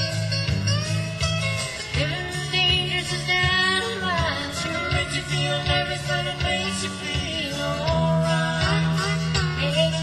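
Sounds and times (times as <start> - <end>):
country band playing live: 0.0 - 10.0
guitar: 0.0 - 10.0
pulsing bass line: 0.0 - 10.0
person singing: 2.0 - 10.0.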